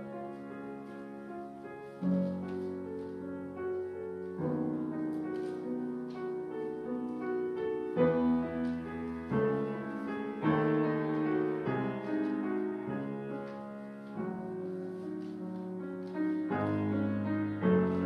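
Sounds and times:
solo grand piano: 0.0s - 18.0s.

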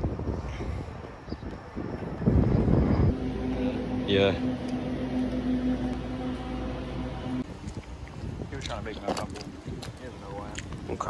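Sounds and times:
wind on microphone: 0.0s - 3.2s, 7.4s - 11.0s
low electrical hum: 3.1s - 7.8s.

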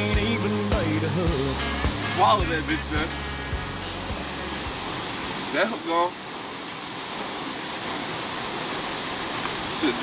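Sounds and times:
steady rushing outdoor noise: 0.0s - 10.0s.

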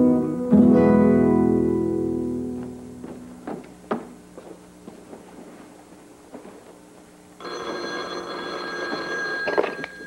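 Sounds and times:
telephone bell ringing: 7.4s - 10.0s.

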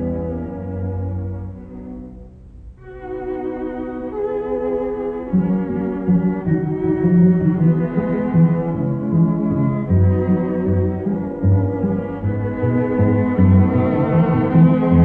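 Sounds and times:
string quartet playing: 0.0s - 15.0s.

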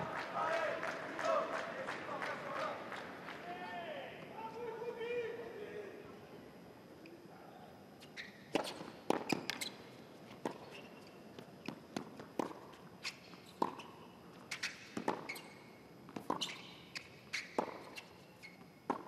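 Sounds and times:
shoes squeaking on court: 8.0s - 19.0s
ball bouncing on court: 8.5s - 9.7s.

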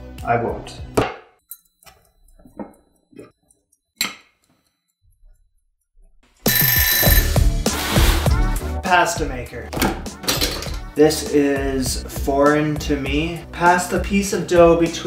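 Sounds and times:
kitchen timer bell ringing: 6.5s - 7.4s.

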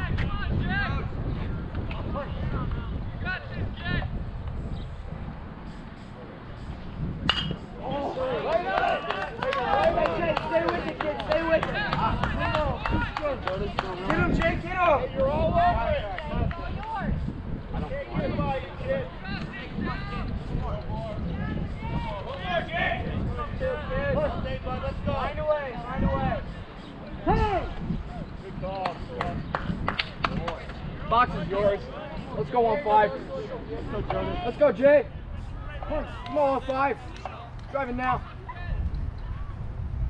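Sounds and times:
people chattering: 5.0s - 39.9s
metal bat hitting ball: 7.2s - 7.7s
steady low rumble: 36.9s - 40.0s.

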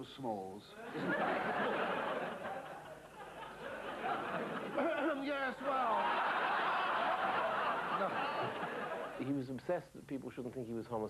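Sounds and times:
audience laughing: 0.8s - 9.2s.

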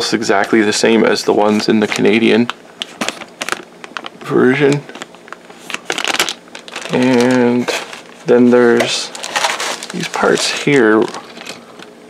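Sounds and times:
plastic bag crinkling: 4.9s - 11.8s.

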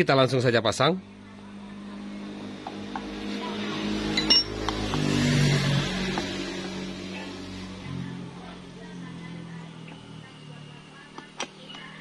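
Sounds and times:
engine hum: 0.2s - 12.0s
metallic clink: 4.2s - 4.6s.

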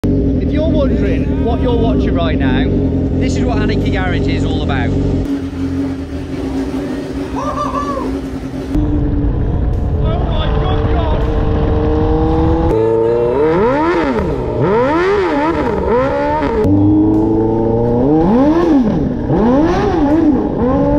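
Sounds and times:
motorcycle engine revving: 0.0s - 20.9s.

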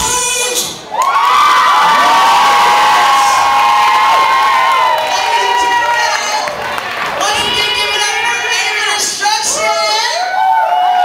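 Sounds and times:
crowd cheering and screaming: 0.9s - 11.0s.

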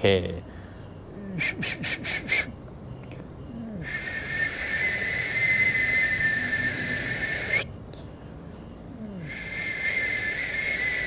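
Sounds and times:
high whistled note: 3.9s - 7.7s.

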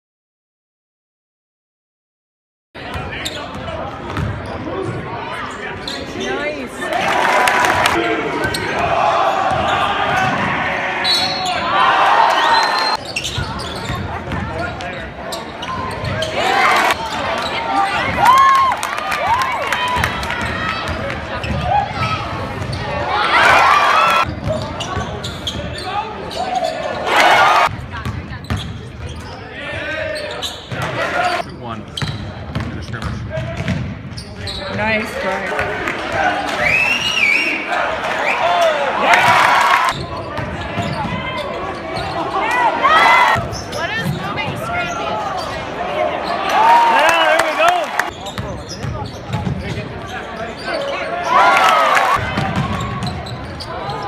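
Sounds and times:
spectators talking: 2.8s - 54.0s
crowd noise bursts: 6.9s - 13.0s.

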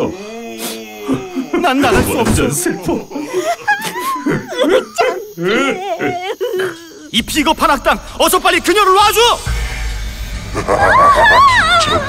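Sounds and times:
cartoon voices laughing: 2.6s - 7.1s, 10.6s - 12.0s.

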